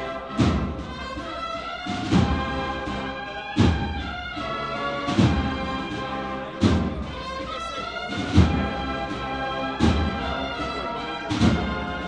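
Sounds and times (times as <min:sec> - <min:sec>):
held brass chords: 0:00.0 - 0:12.0
slow bass drum beat: 0:06.6 - 0:07.4.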